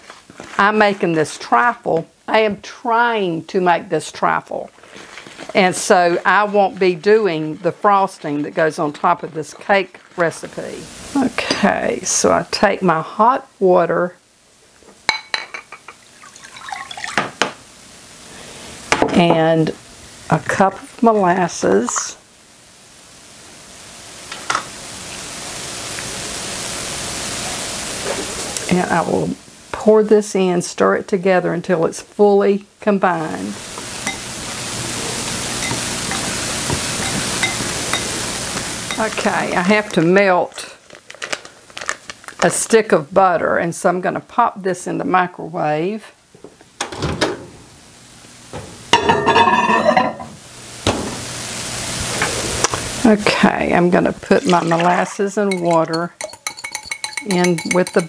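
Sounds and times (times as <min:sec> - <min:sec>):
steady background hiss: 0:00.0 - 0:58.0
microwave running hum: 0:33.4 - 0:40.1, 0:46.3 - 0:53.0
hiss: 0:50.6 - 0:53.0.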